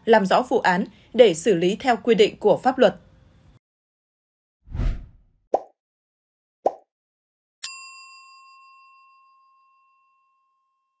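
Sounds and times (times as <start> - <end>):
bright bell-like ding: 7.6 - 10.8.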